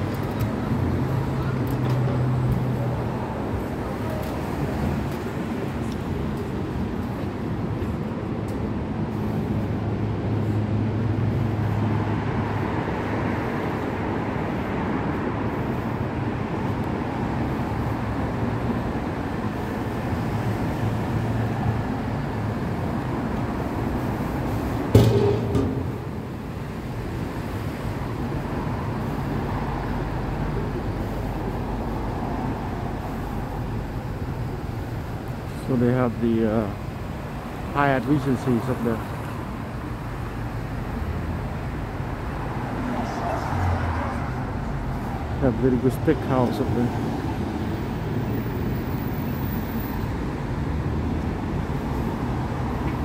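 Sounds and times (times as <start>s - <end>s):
road traffic: 0.0s - 53.0s
sharp knock: 24.9s - 26.4s.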